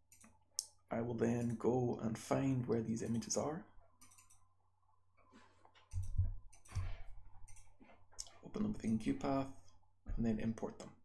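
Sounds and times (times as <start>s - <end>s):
computer mouse clicking: 0.1s - 0.7s, 4.0s - 4.5s, 5.6s - 9.1s.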